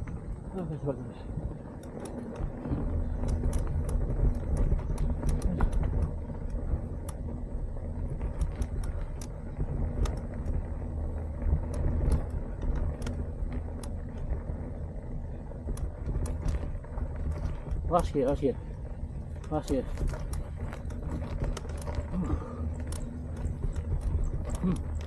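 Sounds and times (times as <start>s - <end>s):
bike clicks and rattles: 0.0s - 25.0s
bike rolling on dirt path: 0.0s - 25.0s.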